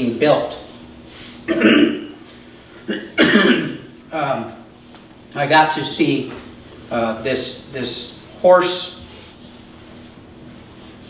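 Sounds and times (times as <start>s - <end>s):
man coughing: 1.5s - 2.2s, 2.8s - 3.9s.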